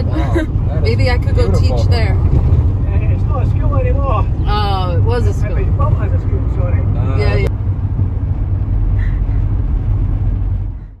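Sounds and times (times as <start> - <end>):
car engine rumble: 0.0 - 11.0
tyres on road: 0.0 - 11.0.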